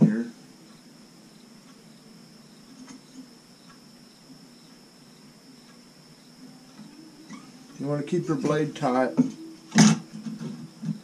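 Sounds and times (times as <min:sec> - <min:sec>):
faint high-pitched whine: 0:00.0 - 0:11.0
low hum: 0:00.0 - 0:11.0.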